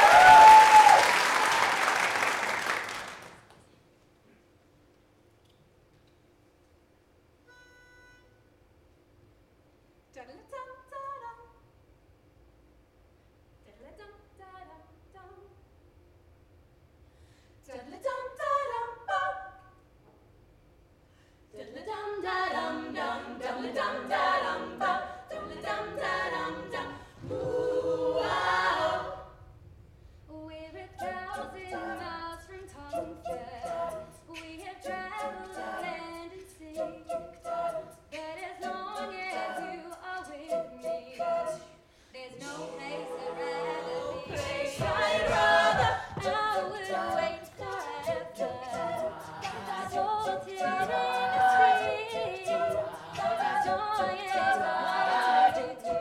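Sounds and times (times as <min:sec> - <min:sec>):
women singing in harmony: 0:17.7 - 0:19.7, 0:21.5 - 0:29.4, 0:30.3 - 0:56.0
vocal percussion beat: 0:42.4 - 0:56.0.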